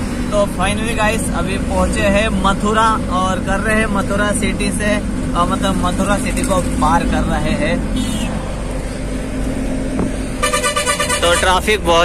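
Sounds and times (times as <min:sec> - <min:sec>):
truck engine drone from cab: 0:00.0 - 0:12.0
vehicle horn: 0:10.4 - 0:11.7.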